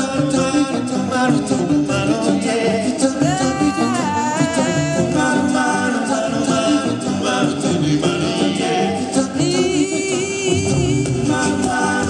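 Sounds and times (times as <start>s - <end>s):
women singing into microphones: 0.8s - 12.0s.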